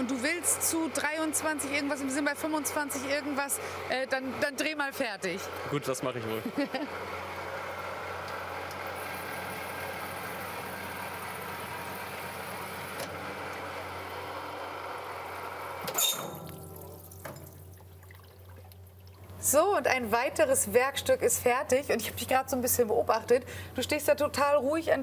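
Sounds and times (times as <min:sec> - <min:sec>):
machine hum: 0:00.0 - 0:21.9
coolant flowing: 0:06.9 - 0:20.4.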